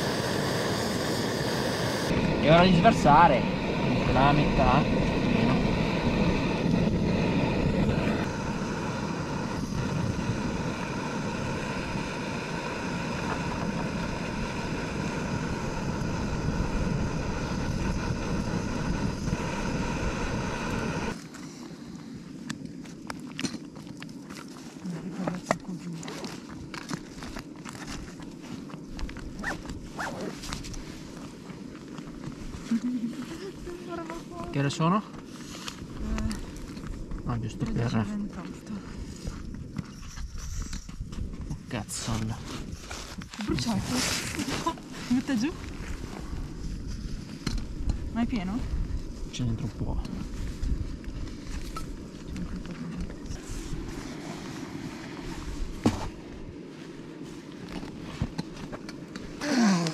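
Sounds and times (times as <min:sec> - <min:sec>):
gas stove roaring: 0:00.0 - 0:21.2.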